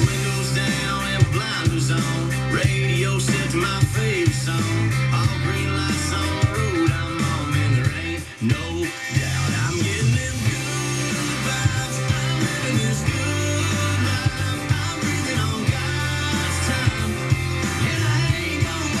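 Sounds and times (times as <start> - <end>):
country pop song on radio: 0.0 - 19.0.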